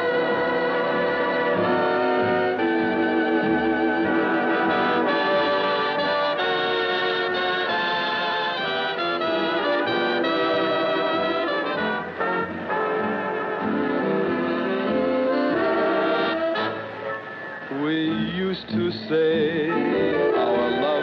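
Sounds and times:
big band swing orchestra: 0.0 - 17.4
brass section holding chords: 0.0 - 18.4, 19.2 - 21.0.

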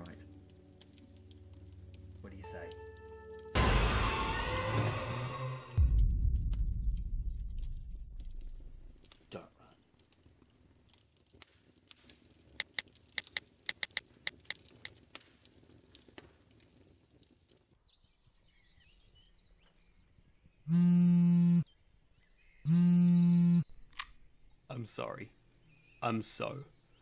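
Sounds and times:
crackling clicks: 0.0 - 3.7, 4.4 - 17.8, 23.8 - 24.2
bird chirps: 17.8 - 20.8, 21.6 - 24.5, 25.6 - 27.0.

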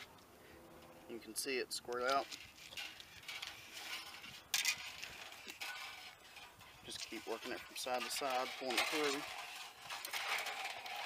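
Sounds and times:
metal cable scraping in tube: 2.0 - 11.0.

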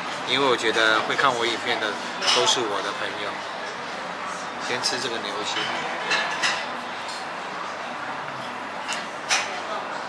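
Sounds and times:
diners' voices: 0.0 - 10.0.

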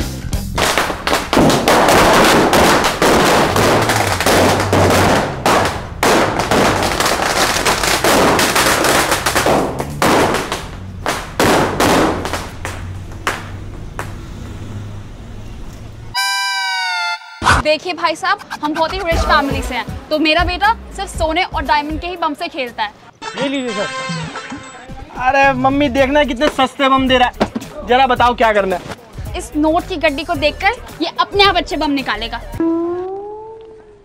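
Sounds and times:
background music: 0.0 - 11.6, 16.2 - 32.7
firecrackers crackling: 0.0 - 15.8.

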